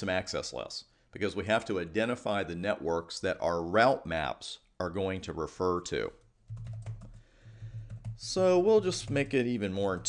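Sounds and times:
typing on computer keyboard: 0:06.5 - 0:10.0.

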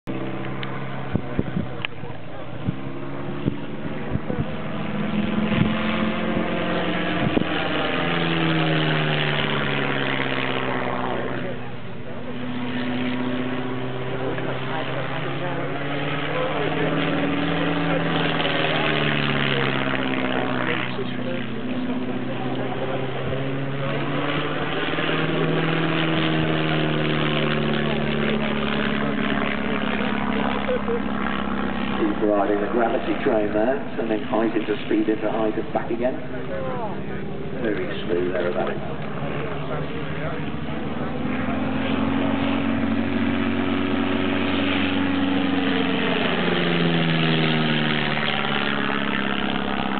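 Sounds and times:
propeller plane engine droning: 0:00.0 - 0:49.9.

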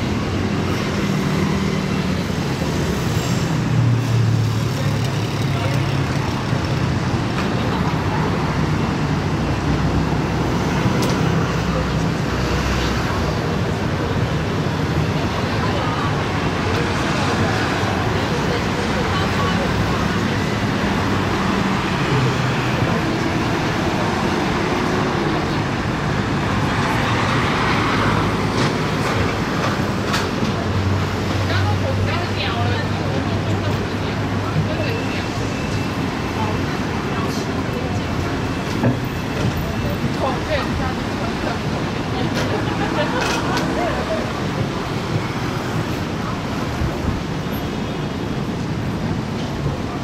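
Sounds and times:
road traffic noise: 0:00.0 - 0:50.0.

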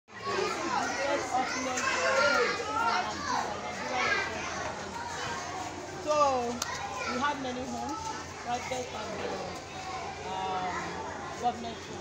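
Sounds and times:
children chattering: 0:00.1 - 0:12.0.

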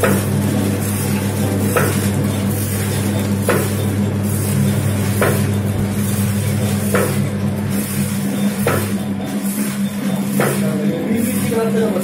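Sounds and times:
packing machine electrical hum: 0:00.0 - 0:12.0.

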